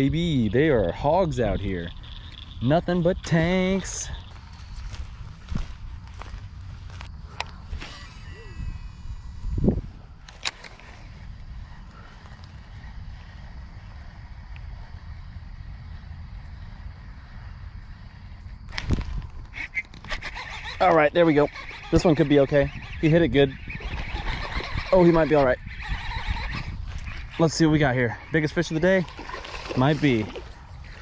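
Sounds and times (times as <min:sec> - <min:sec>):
low steady rumble: 0:08.3 - 0:18.7.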